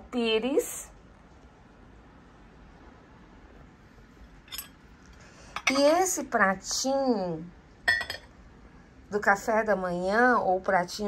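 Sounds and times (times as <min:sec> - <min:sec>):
teaspoon clinking on saucer: 0:07.9 - 0:08.3.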